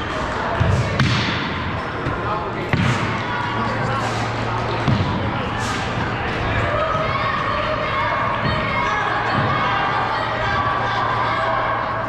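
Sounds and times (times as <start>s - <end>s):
people chattering in a hall: 0.0s - 12.0s.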